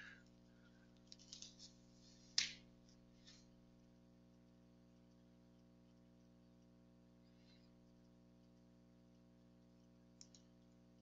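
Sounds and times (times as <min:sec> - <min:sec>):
faint scattered ticks: 0:00.0 - 0:11.0
low steady hum: 0:00.0 - 0:11.0.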